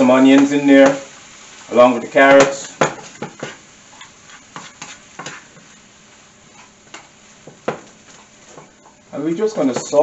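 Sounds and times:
vegetables sizzling in pan: 0.0 - 10.0
utensil scraping and knocking pan: 2.4 - 5.8.

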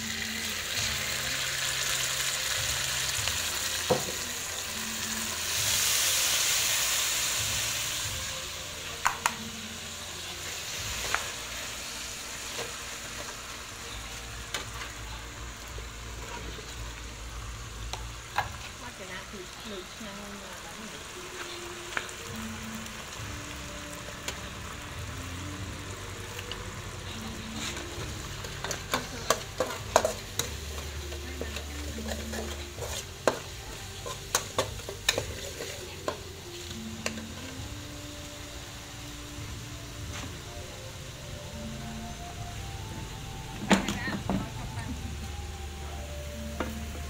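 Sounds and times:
sauce sizzling in wok: 0.0 - 47.0
metal spatula scraping wok: 27.2 - 37.4.

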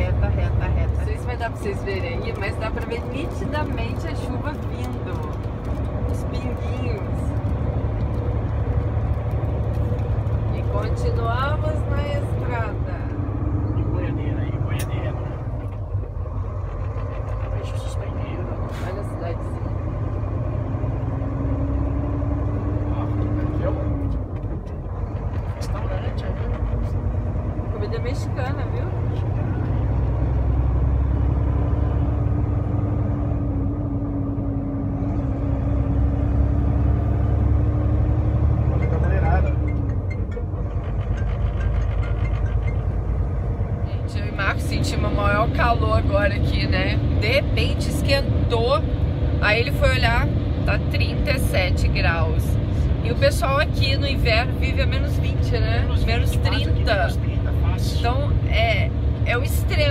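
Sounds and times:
truck engine and road rumble: 0.0 - 59.9.

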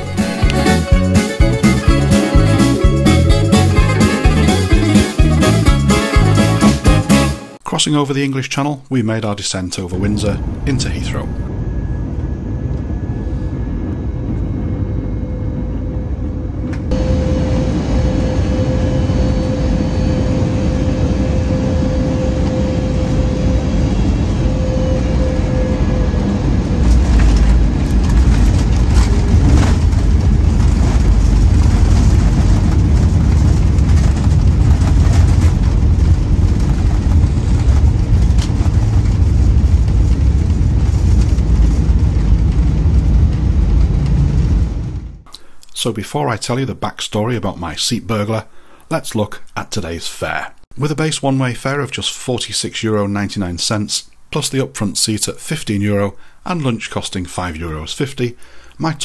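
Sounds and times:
airliner engine and airflow rush: 0.0 - 6.4, 9.8 - 45.6
loud low runway rumble: 0.0 - 7.0, 9.9 - 45.3
faint hum: 9.6 - 46.1.

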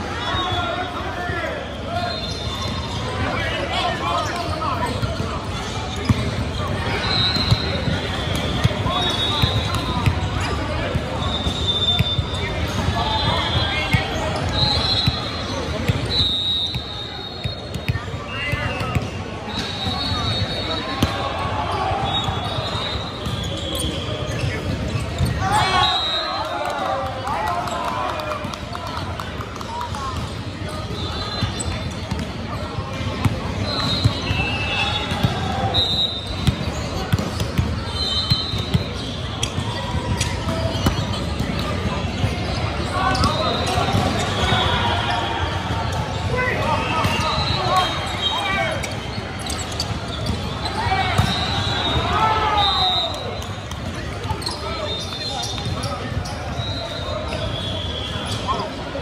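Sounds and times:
sneakers squeaking: 0.0 - 26.6, 29.8 - 59.0
players shouting: 25.2 - 29.0, 41.9 - 53.4.

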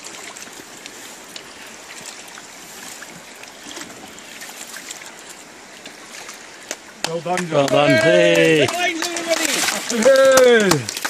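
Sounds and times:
river water rushing: 0.0 - 11.0
water lapping against boat hull: 0.0 - 11.0.

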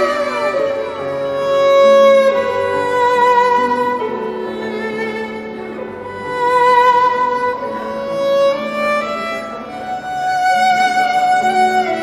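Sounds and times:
bowed violin slow melody: 0.0 - 12.0.

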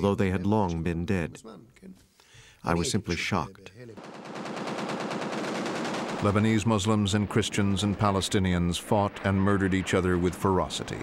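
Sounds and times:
automatic gunfire: 4.0 - 6.7.

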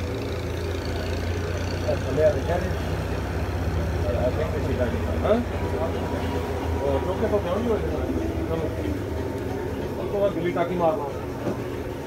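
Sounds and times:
engine running: 0.0 - 12.0
faint voices talking: 0.0 - 12.0.

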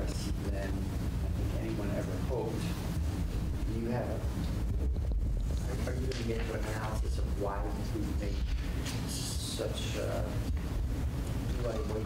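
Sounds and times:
low rumble of background noise: 0.0 - 12.0.

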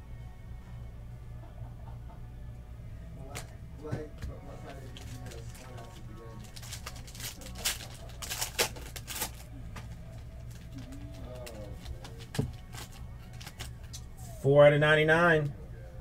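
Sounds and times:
steady low hum: 0.0 - 16.0
foil wrapper tearing and crinkling: 4.9 - 9.5, 10.5 - 14.0.

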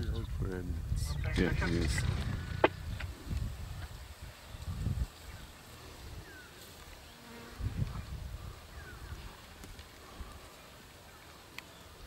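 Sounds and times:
flies buzzing: 3.9 - 12.0.

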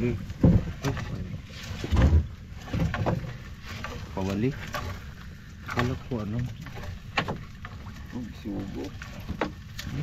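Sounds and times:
loud low thumps on boat: 0.4 - 3.3.

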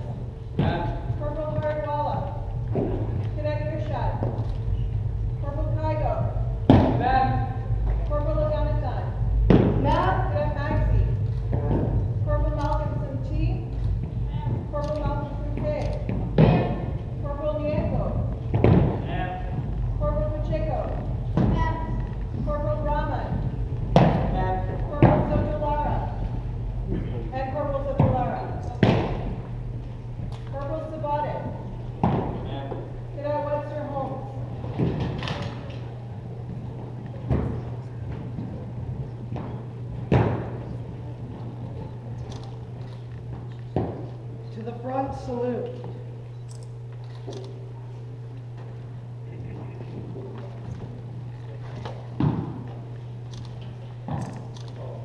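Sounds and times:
boots stamping on hall floor: 9.4 - 12.2, 13.7 - 26.4.

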